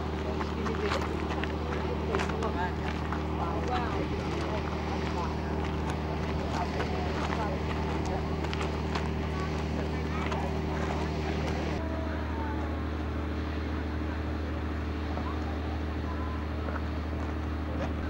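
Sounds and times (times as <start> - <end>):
low mechanical hum: 0.0 - 18.0
people chattering: 0.0 - 18.0.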